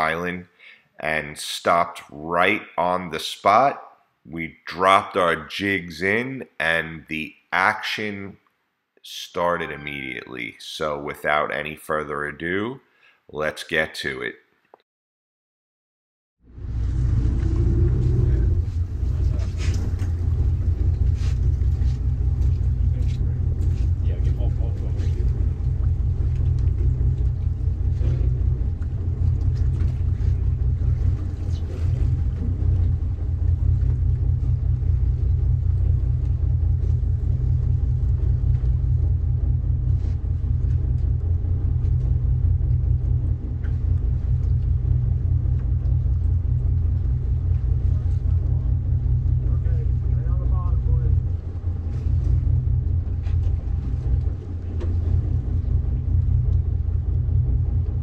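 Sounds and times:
boat engine idling: 16.5 - 58.0.

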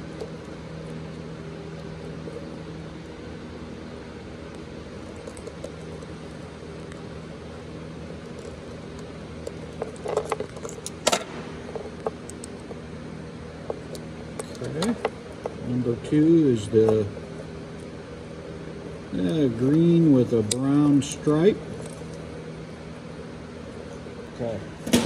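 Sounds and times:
background hum: 0.0 - 25.0.

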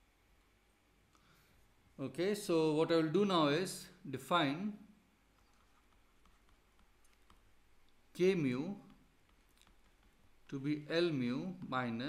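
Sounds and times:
stylus tapping on pen tablet: 5.4 - 8.0, 8.8 - 10.6.

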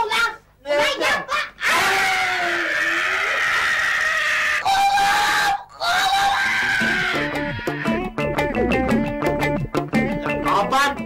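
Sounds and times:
person screaming in pain: 1.4 - 8.0.

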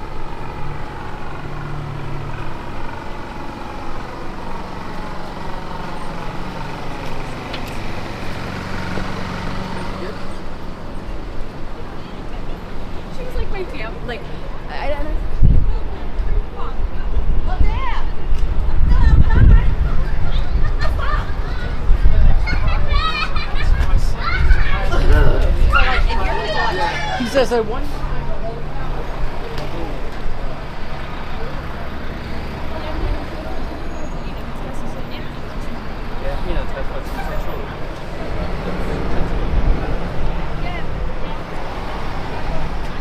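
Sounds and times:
low traffic rumble: 0.0 - 43.0
passersby voices: 0.0 - 43.0.

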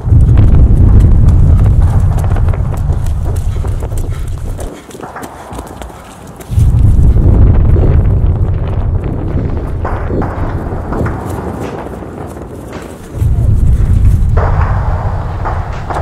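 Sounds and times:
quick footsteps: 0.0 - 16.0
wind buffeting microphone: 0.0 - 16.0.

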